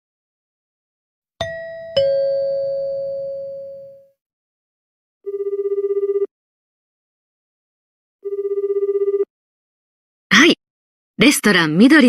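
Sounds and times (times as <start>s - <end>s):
electronic ding-dong chime: 1.4s - 4.1s
telephone ringing: 5.3s - 6.3s, 8.2s - 9.3s.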